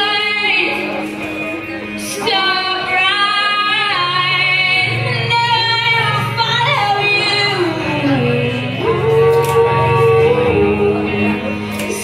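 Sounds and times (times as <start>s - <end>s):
woman singing through microphone: 0.0s - 1.2s, 2.0s - 12.0s
electric guitar: 0.0s - 12.0s.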